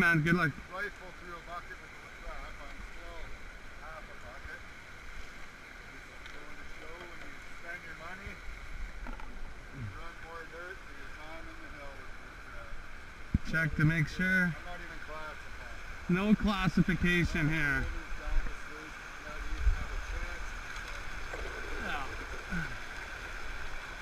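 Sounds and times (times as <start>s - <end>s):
river water running over rocks: 0.0s - 24.0s.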